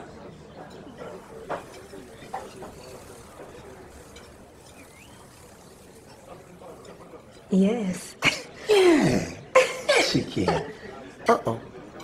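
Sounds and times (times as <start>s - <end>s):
hummingbird chirp: 0.9s - 7.0s.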